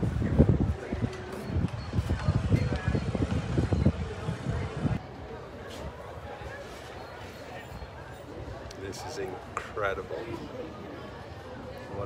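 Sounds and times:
wind buffeting microphone: 0:00.0 - 0:05.1.

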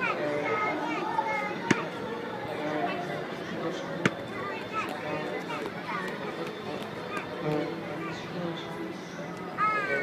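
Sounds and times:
voices talking and calling: 0:00.0 - 0:10.0.

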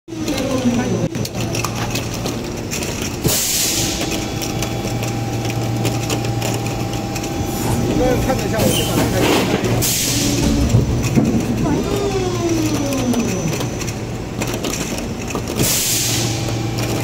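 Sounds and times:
machine humming: 0:00.1 - 0:17.0.

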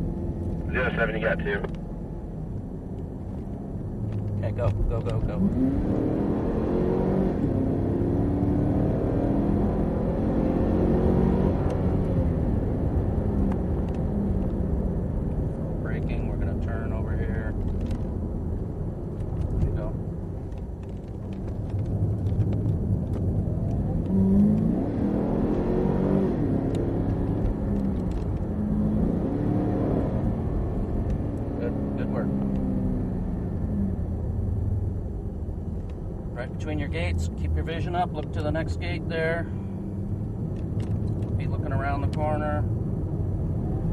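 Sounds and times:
low road noise drone: 0:00.0 - 0:43.9
car engine accelerating: 0:02.9 - 0:43.9.

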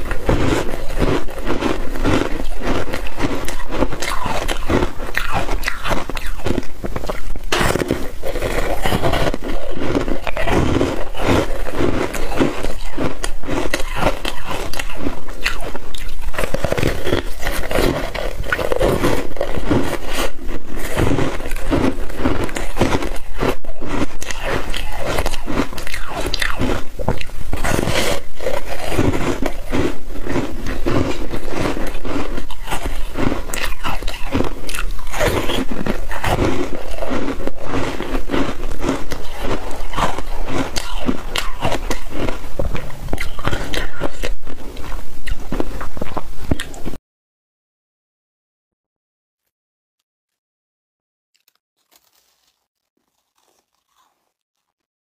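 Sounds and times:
crunching of frozen foam ice: 0:00.0 - 0:47.0, 0:51.4 - 0:54.9.

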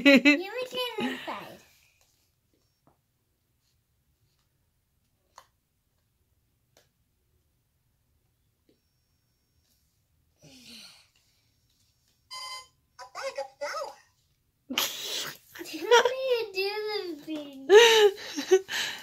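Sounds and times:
laughter: 0:00.0 - 0:00.4, 0:17.7 - 0:18.7
short electronic beep: 0:12.3 - 0:12.8
recorded voice: 0:13.0 - 0:14.1, 0:15.6 - 0:17.7.

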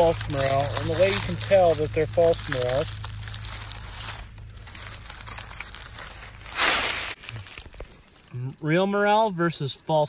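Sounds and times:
dry leaves rustling: 0:00.0 - 0:10.0.

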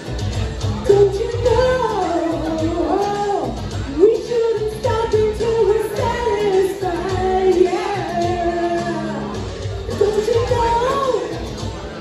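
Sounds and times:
karaoke backing track: 0:00.0 - 0:12.0
woman singing into microphone: 0:00.8 - 0:11.5.

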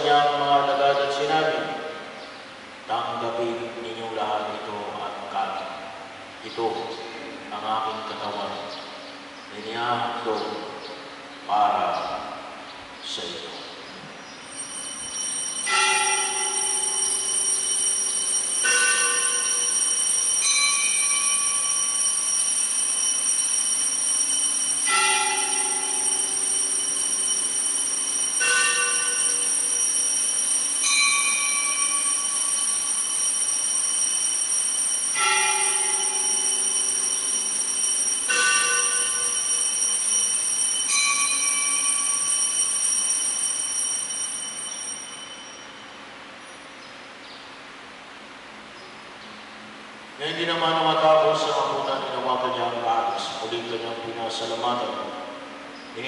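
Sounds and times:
steady high whine: 0:00.0 - 0:46.9
chimes playing slow phrase: 0:14.4 - 0:46.6.

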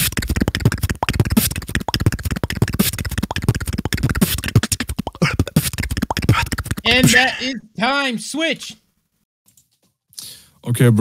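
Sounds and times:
beatboxing into a microphone: 0:00.0 - 0:07.3.

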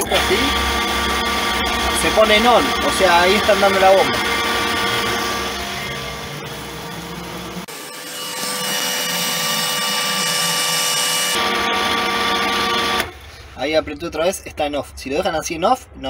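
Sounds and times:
pump motor humming and whining: 0:00.0 - 0:13.3.

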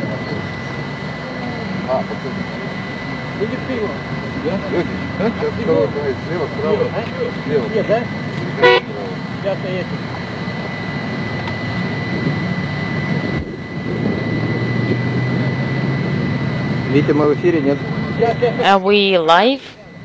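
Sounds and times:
low steady hum: 0:00.0 - 0:20.0
steady outdoor rumble: 0:00.0 - 0:20.0
short high-pitched toot: 0:08.6 - 0:09.0.

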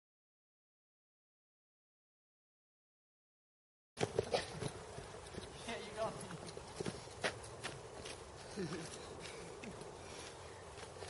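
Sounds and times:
footsteps on gravel: 0:04.0 - 0:11.0.

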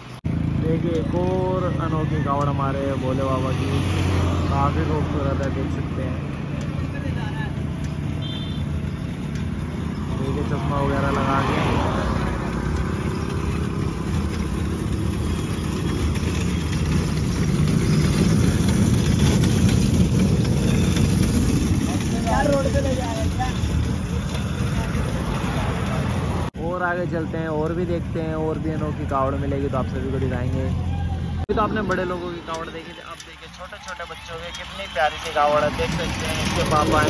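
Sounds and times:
rush of passing vehicles: 0:00.0 - 0:37.0.

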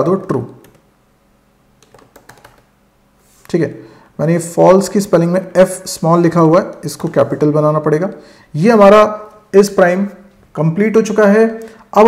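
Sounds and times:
computer keyboard keystrokes: 0:00.4 - 0:00.8, 0:01.8 - 0:02.7.

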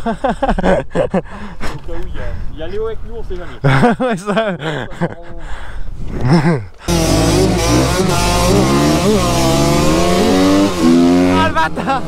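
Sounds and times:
men talking and laughing: 0:00.0 - 0:12.0.

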